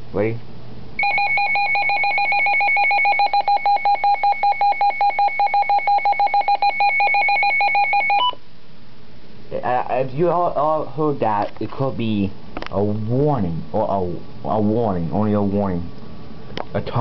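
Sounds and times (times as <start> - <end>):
rapidly pulsing electronic beep: 1.0 - 8.4.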